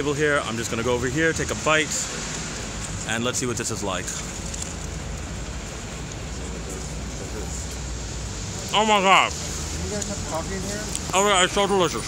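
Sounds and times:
city street background noise: 0.0 - 12.0.

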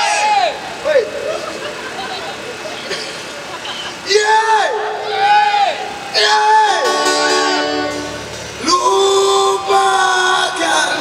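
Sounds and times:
crowd murmuring: 0.0 - 11.0
traffic noise: 0.0 - 11.0.

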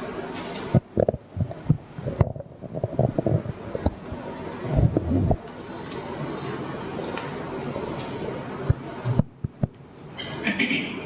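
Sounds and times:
microphone handling bumps and rustles: 0.8 - 5.4.

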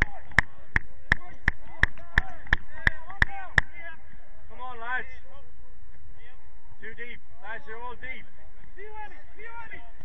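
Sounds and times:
voices calling: 0.0 - 10.0.

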